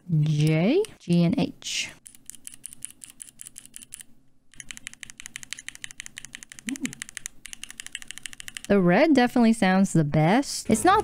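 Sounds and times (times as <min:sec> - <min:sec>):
mechanical keyboard clicks: 0:02.1 - 0:08.8.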